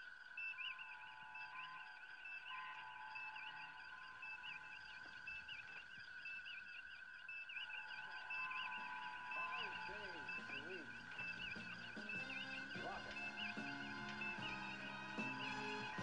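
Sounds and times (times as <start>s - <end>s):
warbling computer chirps: 0.0s - 16.0s
held electronic tones: 7.3s - 16.0s.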